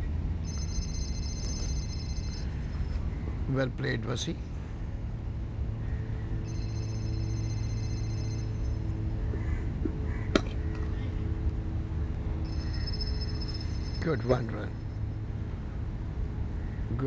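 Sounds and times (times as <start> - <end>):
low hum: 0.0 - 16.8
faint held tones: 0.4 - 3.3, 6.4 - 9.2, 12.4 - 15.3.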